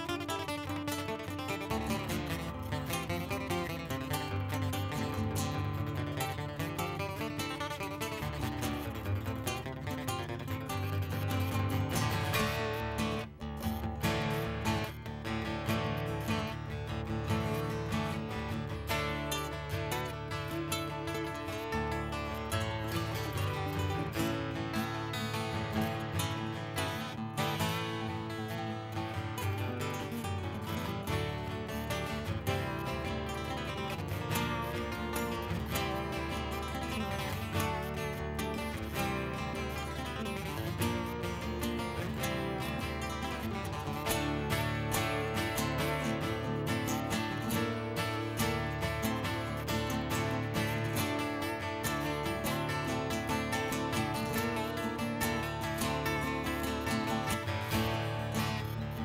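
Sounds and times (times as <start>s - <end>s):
nylon-string guitar: 0.0s - 59.0s
steel-string acoustic guitar: 0.0s - 59.0s.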